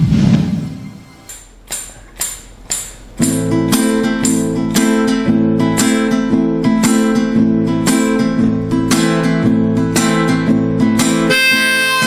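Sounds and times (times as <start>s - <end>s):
whoosh: 0.0s - 1.2s
nylon-string guitar strumming chords: 0.8s - 12.0s
sharp count-in taps: 1.2s - 4.6s.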